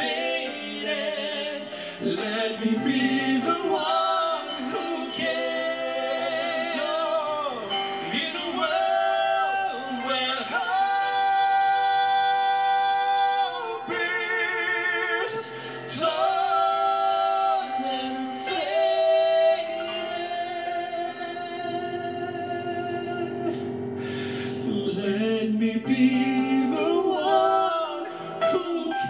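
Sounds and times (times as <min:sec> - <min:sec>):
keyboard accompaniment: 0:00.0 - 0:29.0
men singing gospel ballad: 0:00.0 - 0:29.0.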